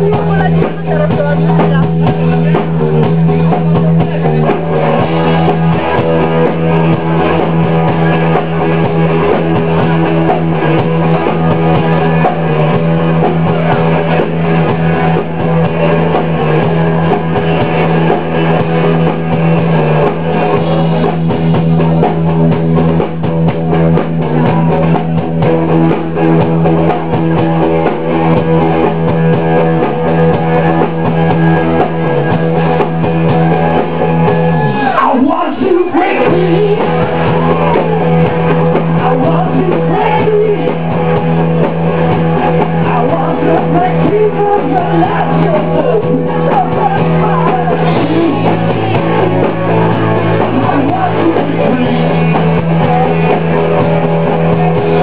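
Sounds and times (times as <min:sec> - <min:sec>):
electric bass: 0:00.0 - 0:55.0
electric guitar: 0:00.0 - 0:55.0.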